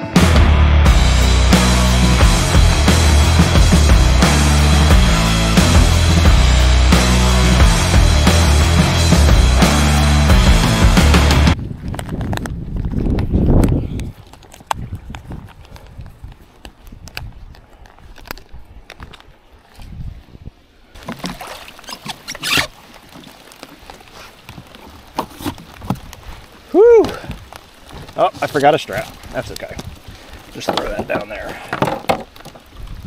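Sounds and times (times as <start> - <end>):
intro music: 0.0 - 11.6
gear handled on plastic kayak: 11.6 - 20.4, 21.0 - 33.0.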